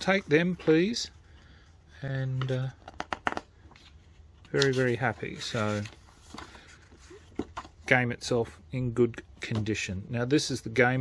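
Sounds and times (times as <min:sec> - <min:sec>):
paper pages rustling: 0:03.6 - 0:08.0.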